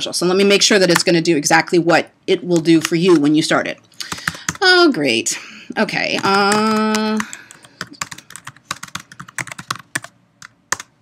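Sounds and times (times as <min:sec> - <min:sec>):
computer keyboard typing: 0:04.0 - 0:05.1, 0:06.0 - 0:11.0.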